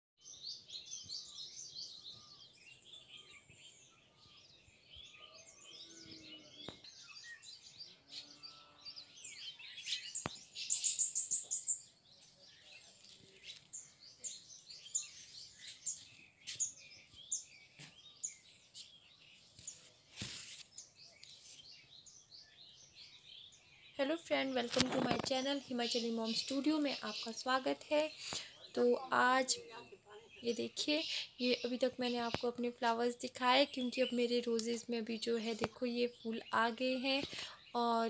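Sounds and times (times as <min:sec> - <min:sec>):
small birds chirping: 0:00.2 - 0:38.0.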